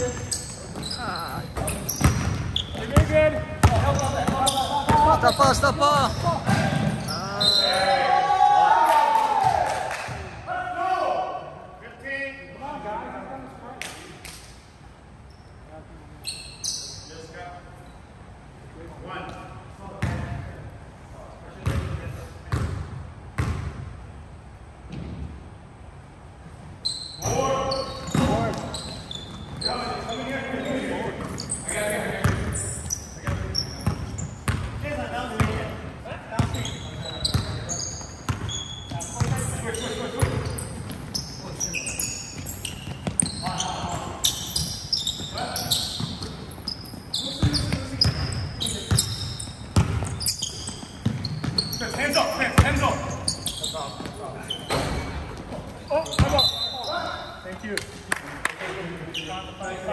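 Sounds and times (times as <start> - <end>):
basketball bouncing on hardwood floor: 2.0 - 4.0, 49.8 - 51.6
players calling out: 36.3 - 57.4.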